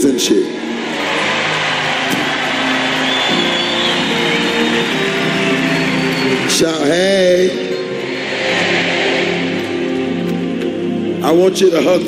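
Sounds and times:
crowd cheering and applauding: 0.5 - 10.9
held musical chords: 0.5 - 12.0.

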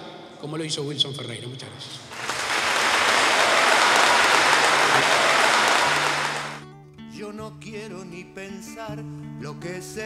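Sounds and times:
audience applauding: 2.1 - 6.6.

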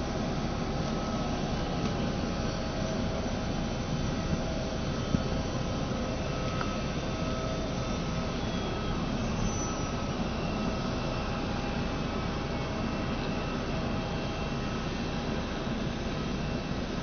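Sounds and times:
faint whining tones: 0.0 - 17.0
jet turbine rushing hum: 0.0 - 17.0.

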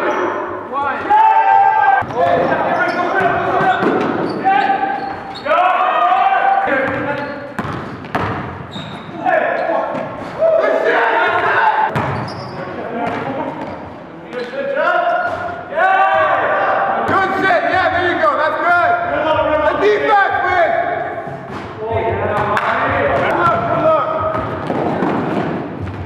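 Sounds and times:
basketball bouncing on gym floor: 6.8 - 9.1, 11.9 - 13.8, 22.3 - 26.0
players calling out: 8.7 - 21.2.

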